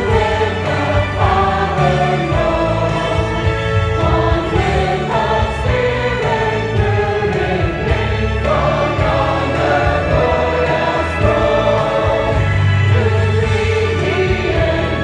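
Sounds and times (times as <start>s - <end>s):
choir singing gospel: 0.0s - 15.0s.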